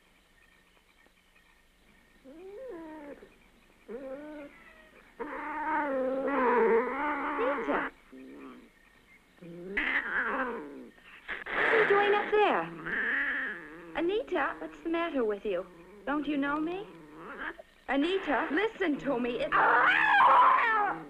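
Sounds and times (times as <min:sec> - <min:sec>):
cat-like yowling: 0:12.8 - 0:14.0, 0:19.5 - 0:21.0.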